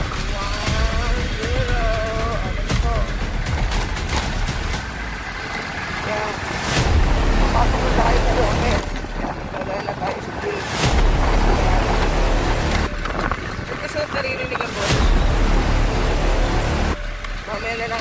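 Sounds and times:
motorcycle running: 0.0s - 18.0s
traffic passing: 0.0s - 18.0s
wind rumbling on microphone: 5.8s - 17.2s.

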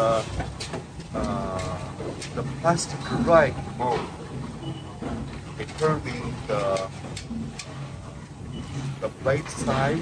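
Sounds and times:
faint machine clicks: 0.0s - 10.0s
low machine hum: 0.0s - 10.0s.

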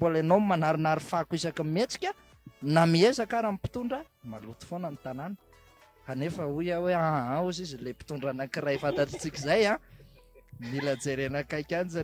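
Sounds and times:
man speaking into a microphone: 0.0s - 5.4s, 6.1s - 9.8s, 10.6s - 12.0s.

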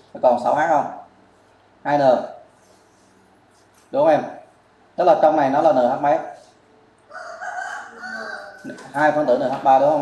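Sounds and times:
rooster crowing: 7.1s - 9.3s.

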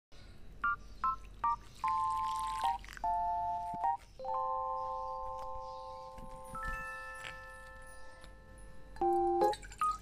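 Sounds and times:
electronic keypad beeps: 0.6s - 7.9s, 9.0s - 10.0s.

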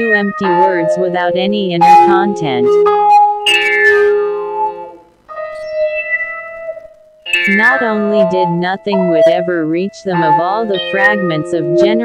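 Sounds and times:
experimental synthesizer music: 0.0s - 12.0s.

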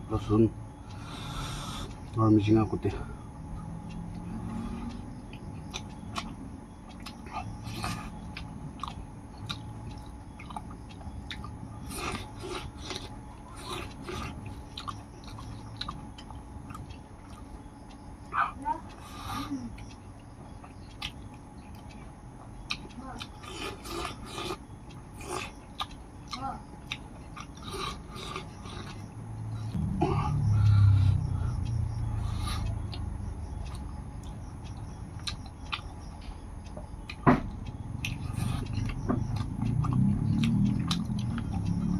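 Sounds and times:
chewing mouth smacks: 5.3s - 17.5s
low rumble: 29.1s - 35.2s.

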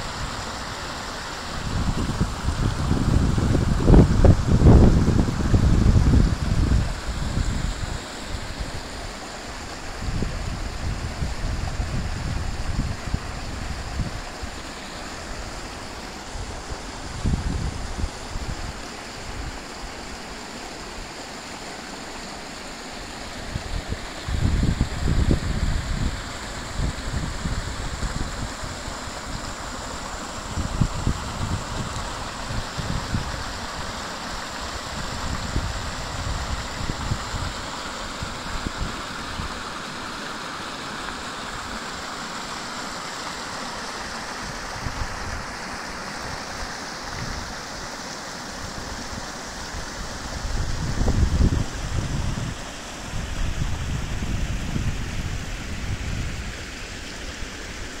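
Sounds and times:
stream rushing over rocks: 0.0s - 58.0s.

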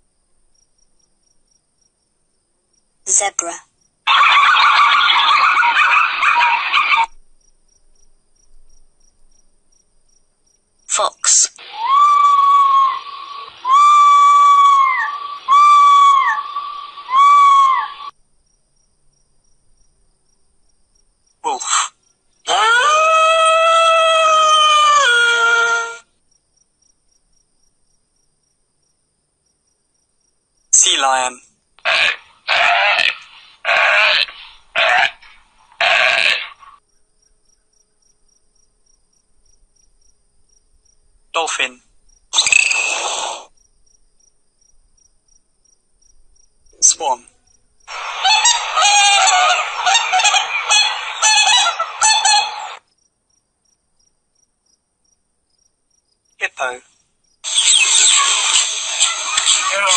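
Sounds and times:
animal calls: 4.1s - 7.2s, 11.6s - 18.1s, 21.5s - 26.0s, 31.8s - 36.8s, 47.9s - 52.8s, 57.4s - 59.9s.

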